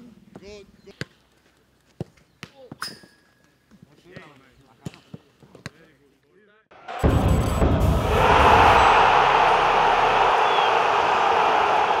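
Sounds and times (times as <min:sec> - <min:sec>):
loud rushing noise: 0:06.8 - 0:12.0.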